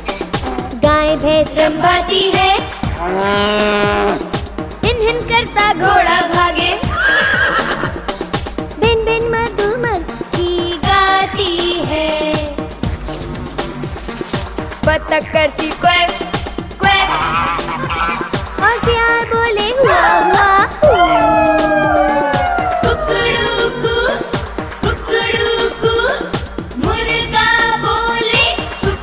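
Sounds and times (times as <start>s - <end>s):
children's song music with drum beat: 0.0s - 29.0s
horse whinny: 6.9s - 8.0s
person singing: 19.7s - 26.3s
howl-like animal call: 19.8s - 23.8s.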